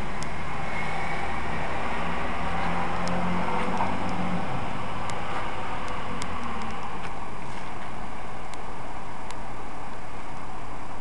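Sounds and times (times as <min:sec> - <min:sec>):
car engine hum: 0:00.0 - 0:11.0
road noise: 0:00.0 - 0:11.0.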